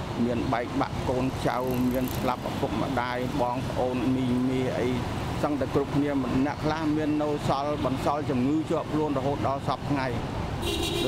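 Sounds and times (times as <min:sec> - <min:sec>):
low hum of traffic: 0:00.0 - 0:11.0
man speaking: 0:00.2 - 0:10.2.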